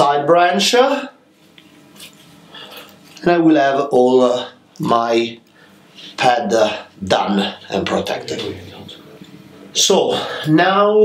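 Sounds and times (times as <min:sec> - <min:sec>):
wire wrapping handling sounds: 0:01.5 - 0:03.2.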